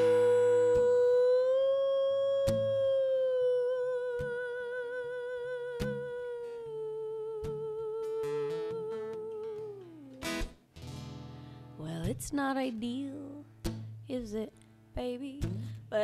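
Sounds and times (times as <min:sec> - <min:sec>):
woman singing long note: 0:00.0 - 0:10.2
acoustic guitar strummed sparsely: 0:00.0 - 0:16.0.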